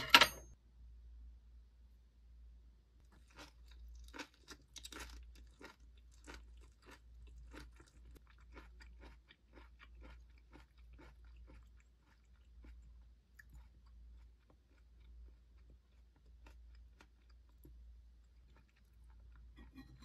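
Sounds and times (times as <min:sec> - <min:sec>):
low steady hum: 0:00.0 - 0:20.0
close-up chewing with crunching: 0:03.1 - 0:19.6.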